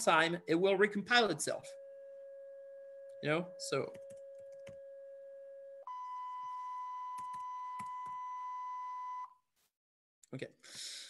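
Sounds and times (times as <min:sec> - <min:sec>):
sine wave tone: 0:00.0 - 0:09.4.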